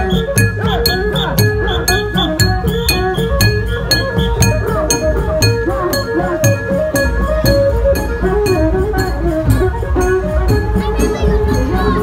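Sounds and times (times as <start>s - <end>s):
drums beating: 0.0s - 12.0s
hand cymbals clinking: 0.0s - 12.0s
wavering gliding melody: 0.0s - 12.0s.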